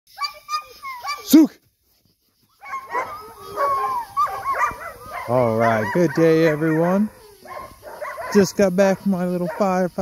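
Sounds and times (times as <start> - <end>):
dog whining and yipping: 2.6 - 6.0.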